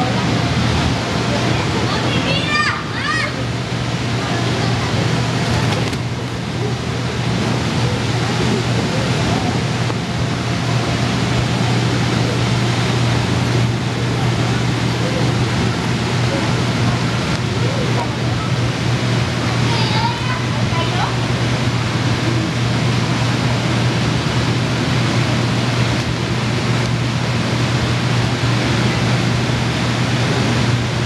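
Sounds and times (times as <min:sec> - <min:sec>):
air blower humming: 0:00.0 - 0:31.0.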